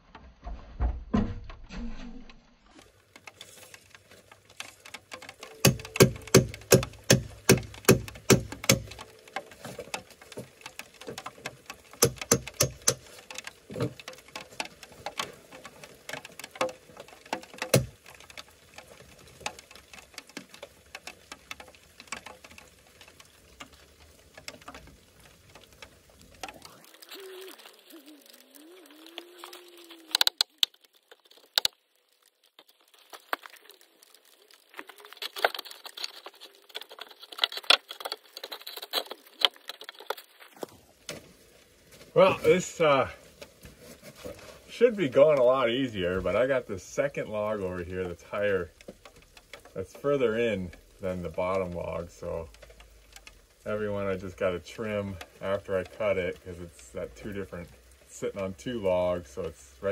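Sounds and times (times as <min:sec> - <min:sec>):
hammer knocking on lumber: 0:05.6 - 0:08.9.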